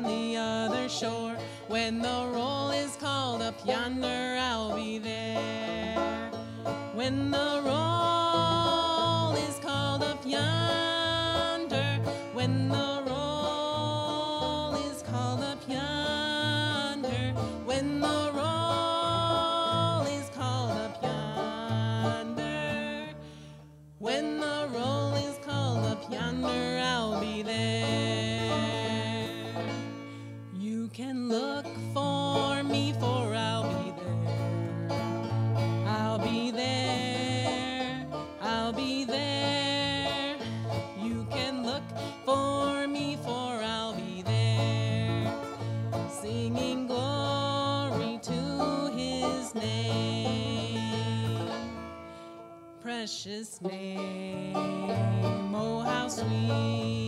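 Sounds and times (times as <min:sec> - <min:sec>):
bass line: 0:00.0 - 0:23.2, 0:23.9 - 0:30.1, 0:31.7 - 0:52.0
woman singing: 0:00.0 - 0:23.3, 0:24.0 - 0:51.8, 0:52.8 - 0:57.0
acoustic guitar: 0:00.0 - 0:57.0
plucked banjo: 0:00.0 - 0:57.0.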